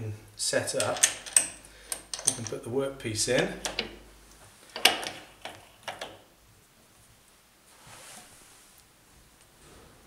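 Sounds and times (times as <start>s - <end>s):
sharp metallic clicks: 0.8s - 2.6s.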